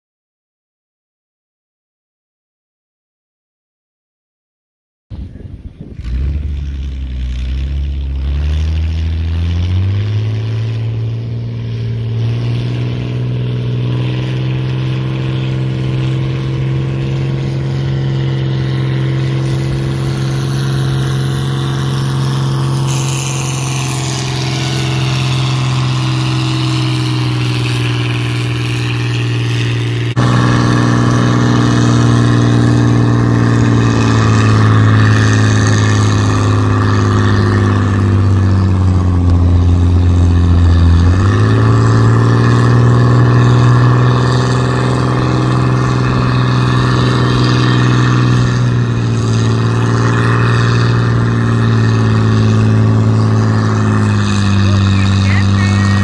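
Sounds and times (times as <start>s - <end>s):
tractor engine working hard: 5.2s - 56.0s.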